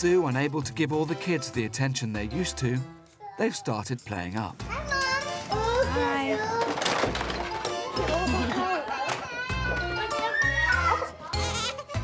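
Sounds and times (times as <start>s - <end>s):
baby crying: 8.0s - 12.0s.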